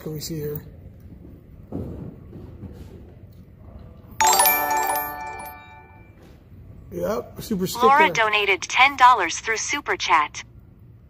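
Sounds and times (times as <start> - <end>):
bright alert chime chord: 4.2 - 6.2.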